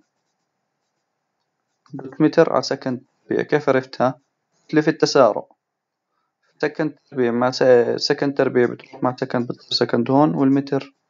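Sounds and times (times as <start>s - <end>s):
stylus scratching on tablet: 0.0s - 1.1s.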